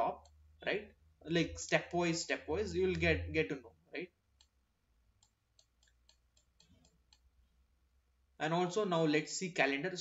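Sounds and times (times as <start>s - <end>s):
computer mouse clicks: 4.4s - 4.6s, 5.2s - 7.3s.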